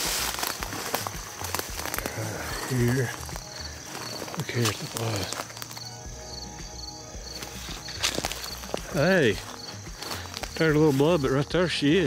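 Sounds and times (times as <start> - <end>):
footsteps crunching dry leaves: 0.0 - 12.0
insects chirping: 0.0 - 12.0.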